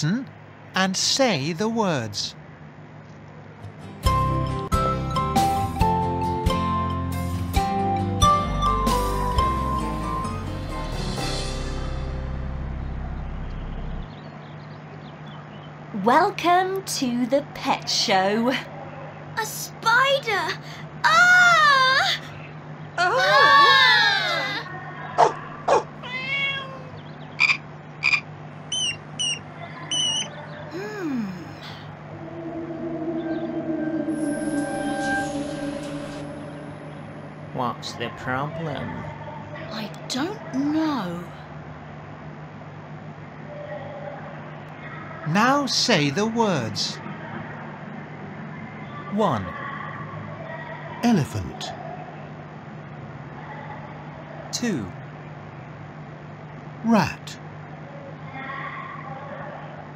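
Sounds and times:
falling animal cry: 23.0 - 34.4
animal calls and chirps: 23.2 - 34.6
steady hum: 27.2 - 43.5.

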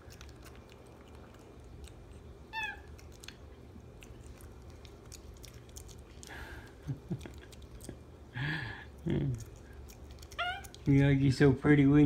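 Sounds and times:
monkey chewing: 0.0 - 8.2, 8.9 - 11.0.

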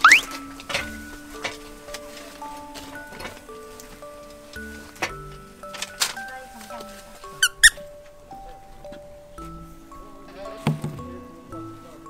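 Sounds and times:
high squeaks: 0.0 - 0.4, 7.4 - 7.9
light background music: 0.0 - 12.0.

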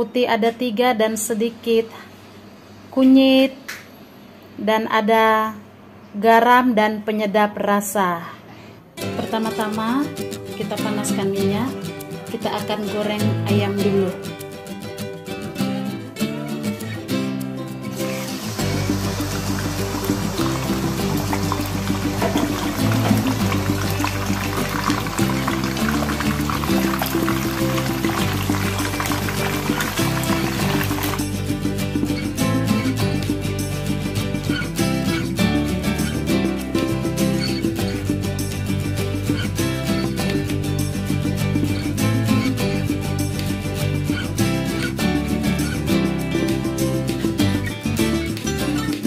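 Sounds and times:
background music: 9.0 - 49.0
chicken sizzling in hot oil: 17.9 - 31.4.

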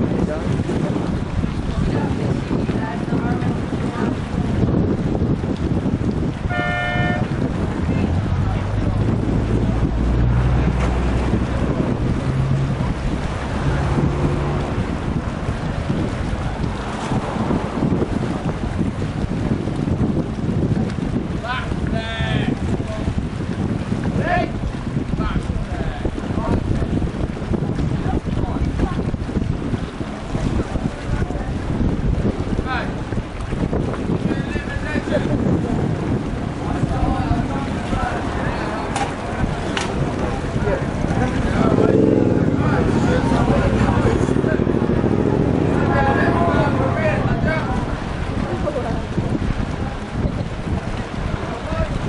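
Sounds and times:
people talking nearby: 0.0 - 18.8, 21.1 - 52.0
wind buffeting microphone: 0.0 - 52.0
short horn toot: 6.5 - 7.3.

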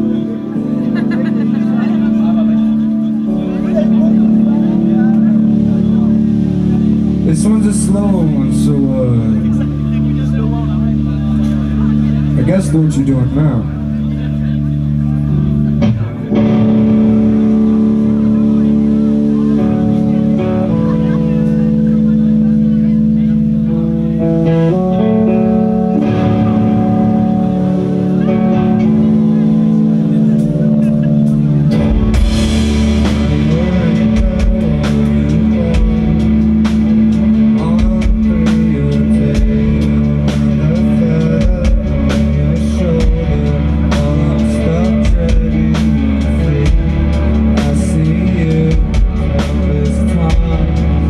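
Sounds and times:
electric guitar drone: 0.0 - 51.0
faint crowd chatter: 0.0 - 51.0.

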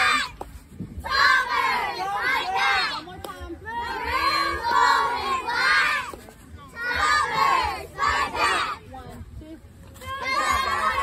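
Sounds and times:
girls chanting a cheer: 1.0 - 3.0, 3.6 - 6.1, 6.8 - 8.8, 10.0 - 11.0.

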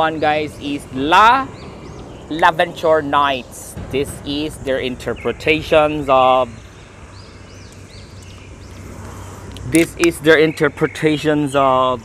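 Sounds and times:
low background rumble: 0.0 - 10.0
small bird chirping: 0.0 - 12.0.

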